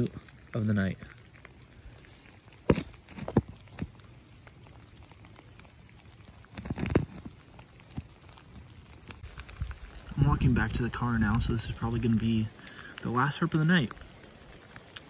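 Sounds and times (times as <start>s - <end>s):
light rain on wet ground: 0.0s - 15.0s.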